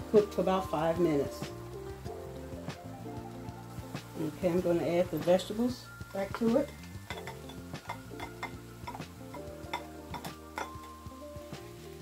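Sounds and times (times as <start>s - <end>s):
background music: 0.0s - 12.0s
spatula scraping a skillet: 6.6s - 11.8s.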